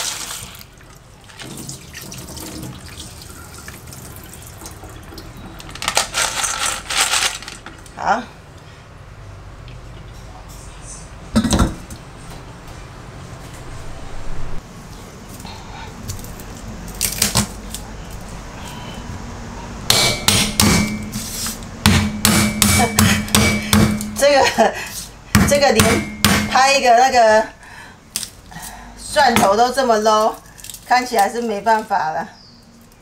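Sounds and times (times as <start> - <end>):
knife chopping on wooden board: 21.9 - 24.2.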